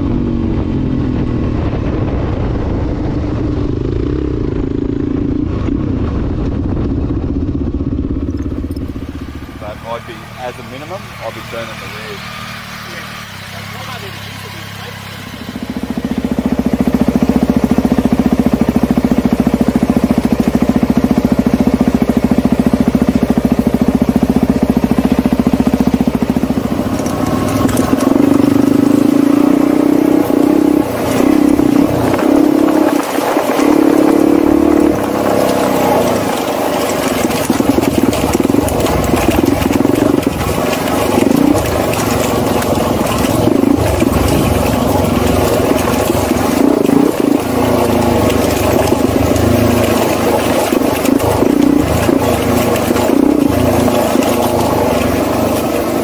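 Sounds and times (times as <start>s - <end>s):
dirt bike engine revving: 3.3s - 56.0s.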